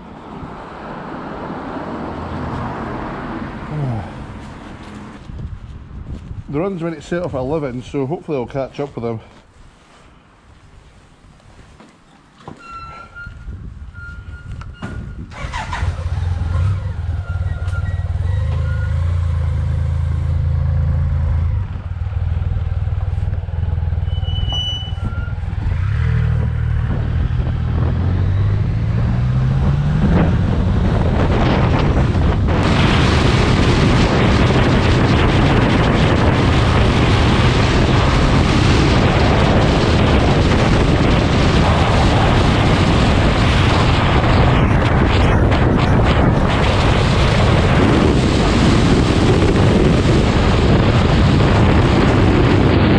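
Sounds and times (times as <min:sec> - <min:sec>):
wind rush on microphone: 0:00.0 - 0:08.9, 0:13.2 - 0:52.9
motorcycle engine revving: 0:24.9 - 0:52.9.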